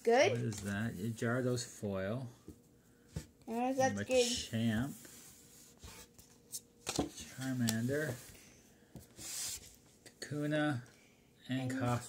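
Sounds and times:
cards rustling: 0:06.0 - 0:08.2.

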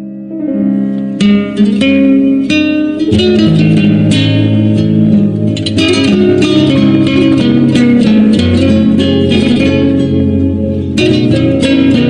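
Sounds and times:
plucked guitar music: 0:00.0 - 0:12.0.

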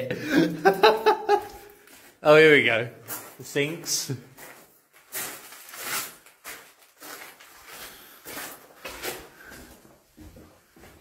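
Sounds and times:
footsteps on gravelly floor: 0:01.3 - 0:11.0.

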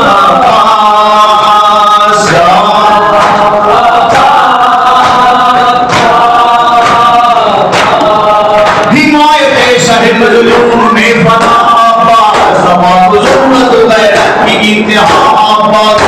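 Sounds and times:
male voices chanting in unison: 0:00.0 - 0:16.0
sharp beats: 0:00.0 - 0:16.0.

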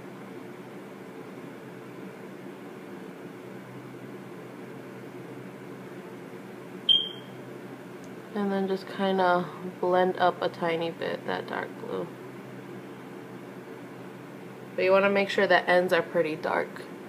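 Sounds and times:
low background hum: 0:00.0 - 0:17.0
short high-pitched electronic beep: 0:06.9 - 0:07.3.

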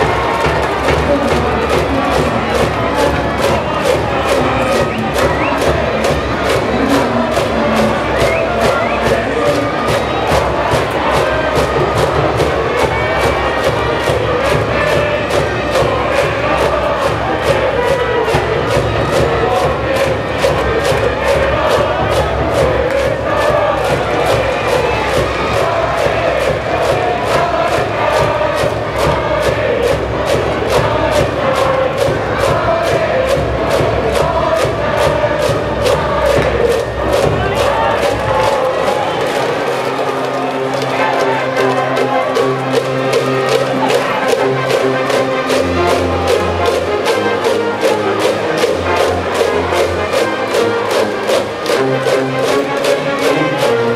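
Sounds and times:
brass band playing: 0:00.0 - 0:11.8, 0:12.6 - 0:53.9
crowd chanting in unison: 0:00.0 - 0:53.9
steady drumbeat: 0:00.0 - 0:53.9.

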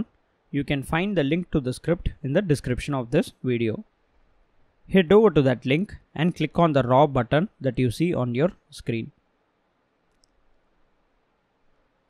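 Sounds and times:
faint computer mouse click: 0:10.1 - 0:10.4.

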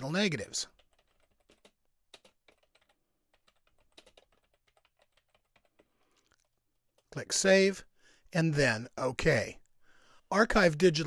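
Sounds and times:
keyboard typing clicks: 0:00.8 - 0:07.1.

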